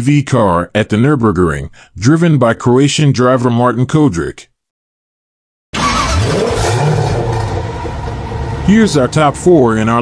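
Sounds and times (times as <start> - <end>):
car engine revving: 5.8 - 9.9.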